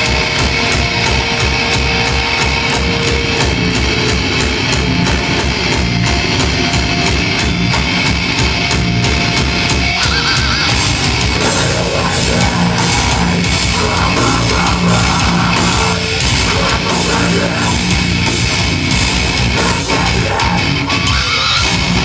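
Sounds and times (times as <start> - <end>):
distorted electric guitars: 0.0 - 22.0
fast drumming: 0.0 - 22.0.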